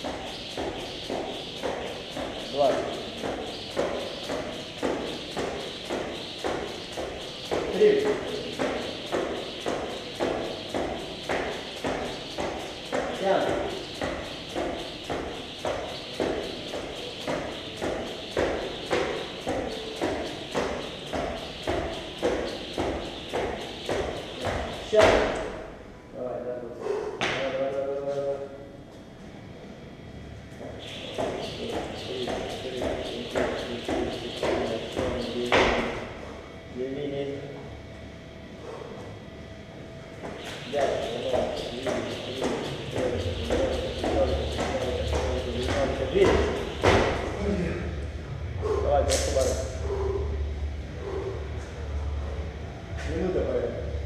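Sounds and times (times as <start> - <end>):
loud rope slap: 0.0 - 25.6, 40.3 - 47.4
jump rope skipping on rubber floor: 0.0 - 25.7, 30.6 - 36.1, 40.2 - 47.4.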